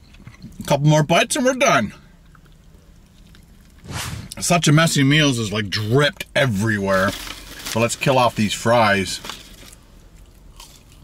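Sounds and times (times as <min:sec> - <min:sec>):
low steady hum: 0:00.0 - 0:11.0
chewing food: 0:02.2 - 0:03.8, 0:09.5 - 0:11.0.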